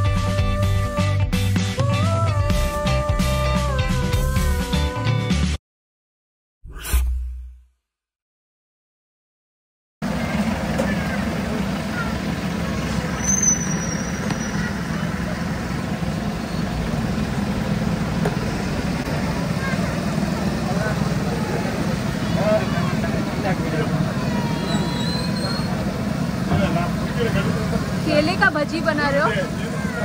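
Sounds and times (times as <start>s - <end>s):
passers-by chatter: 10.0s - 30.0s
traffic hum: 10.0s - 30.0s
brief high squeal: 13.1s - 14.7s, 24.6s - 25.8s.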